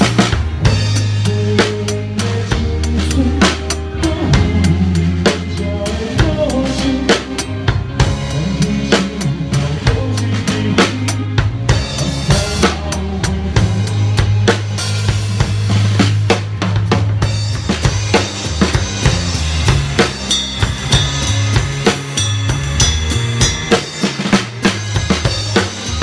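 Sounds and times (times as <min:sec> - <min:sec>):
drum kit beat with cymbals: 0:00.0 - 0:26.0
rock band playing: 0:00.0 - 0:26.0.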